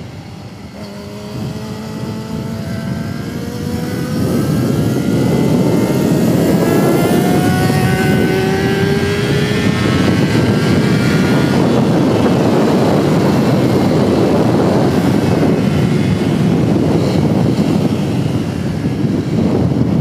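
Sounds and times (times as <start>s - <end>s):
motorcycle engine accelerating: 0.0s - 20.0s
wind noise on microphone: 0.0s - 20.0s.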